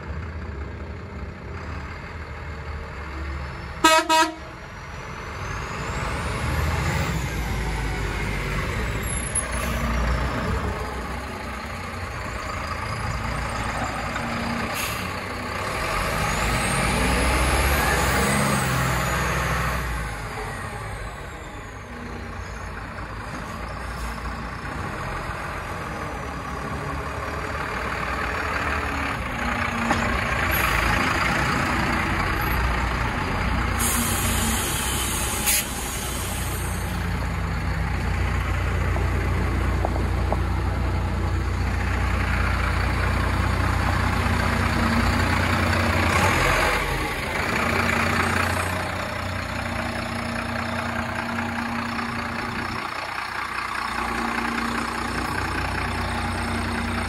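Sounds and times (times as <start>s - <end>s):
garbage truck diesel engine: 0.0s - 57.0s
air brakes hiss: 14.7s - 15.3s, 33.7s - 37.1s.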